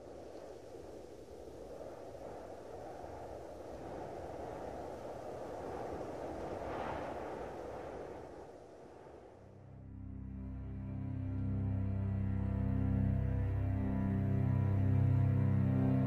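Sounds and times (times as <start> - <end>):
deep cinematic rumble: 9.6 - 16.0.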